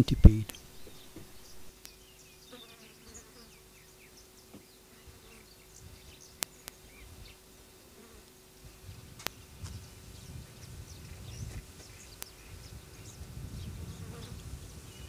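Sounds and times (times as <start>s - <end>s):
faint insect buzzing: 0.5s - 15.0s.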